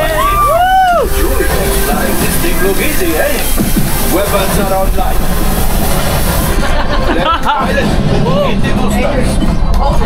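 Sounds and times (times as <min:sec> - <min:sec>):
loud steady low rumble: 0:00.0 - 0:10.0.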